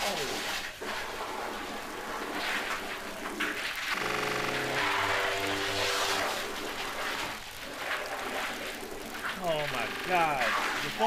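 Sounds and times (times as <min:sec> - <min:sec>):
noisy sound effects: 0:03.9 - 0:11.0.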